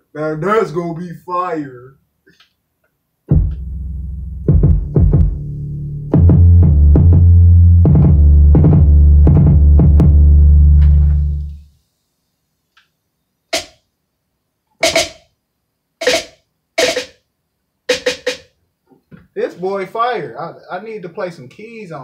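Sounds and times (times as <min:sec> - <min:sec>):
drum machine beat: 0:03.3 - 0:11.3, 0:13.5 - 0:13.8, 0:14.8 - 0:15.3, 0:16.0 - 0:17.2, 0:17.9 - 0:18.5
deep bass: 0:03.3 - 0:11.6
sharp drum hits: 0:13.6 - 0:13.8, 0:14.8 - 0:15.3, 0:16.0 - 0:17.2.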